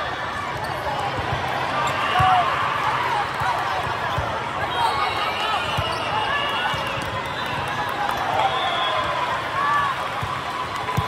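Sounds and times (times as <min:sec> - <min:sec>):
echoing hubbub of voices: 0:00.0 - 0:11.0.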